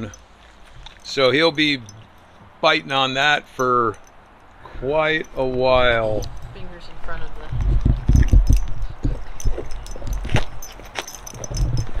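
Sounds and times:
collar tags jingling: 0.0s - 12.0s
dog gnawing on a bone: 7.6s - 12.0s.

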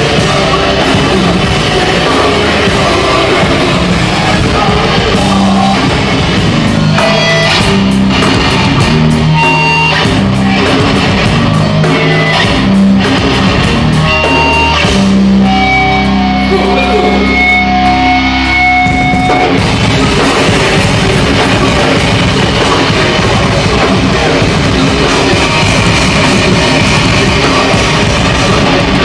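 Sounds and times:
drum hits: 0.0s - 15.4s, 18.8s - 29.0s
electric guitar: 0.0s - 29.0s.

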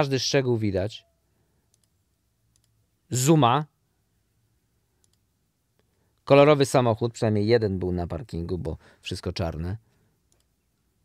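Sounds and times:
faint small clicks: 1.7s - 2.8s, 5.0s - 6.0s, 10.3s - 10.6s.

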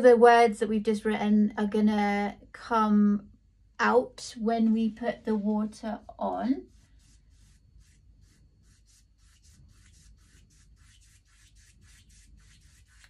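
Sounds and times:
rubbing strokes on paper: 4.9s - 13.0s.

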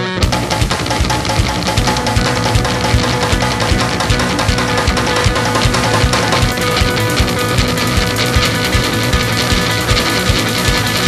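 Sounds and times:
distorted garage rock band: 0.0s - 11.0s.

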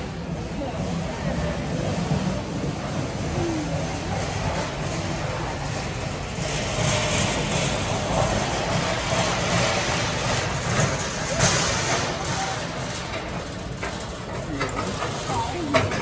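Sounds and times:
cart casters rolling on concrete: 0.0s - 16.0s
store background noise: 0.0s - 16.0s.

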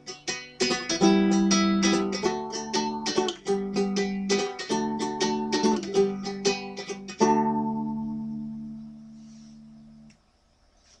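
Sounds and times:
ukulele chord ringing: 0.0s - 10.1s.

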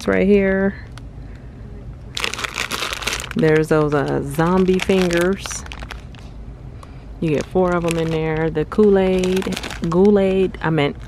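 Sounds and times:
plastic candy bags crinkling: 2.1s - 6.3s, 7.2s - 11.0s.

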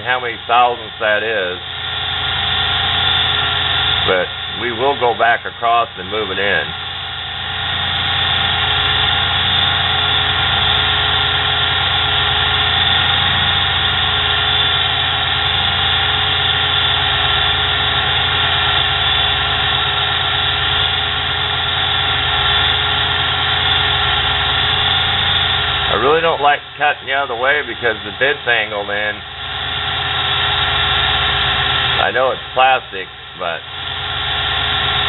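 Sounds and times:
lathe tool cutting plastic: 0.0s - 35.0s
small electric motor whining: 0.4s - 5.2s, 5.9s - 35.0s.

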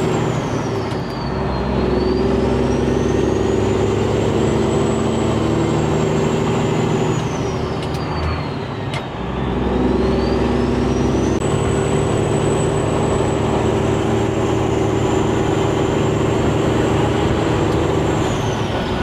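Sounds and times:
road noise: 0.0s - 19.0s
truck diesel engine pulling: 0.0s - 19.0s.

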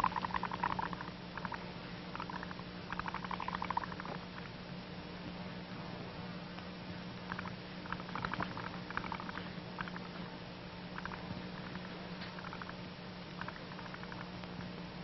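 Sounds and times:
steady hum and hiss: 0.0s - 15.0s
soap bubbles crackling and popping: 2.2s - 4.2s.

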